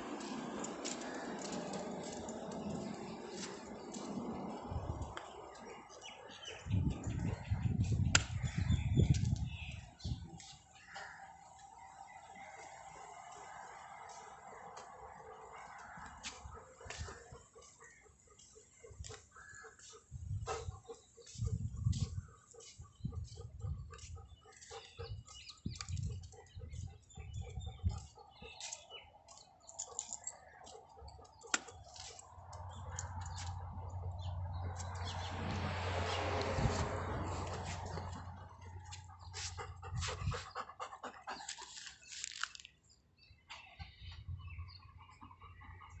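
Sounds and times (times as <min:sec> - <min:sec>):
birds chirping: 0:00.0 - 0:46.0
dog panting rapidly: 0:19.8 - 0:28.6, 0:36.0 - 0:41.7.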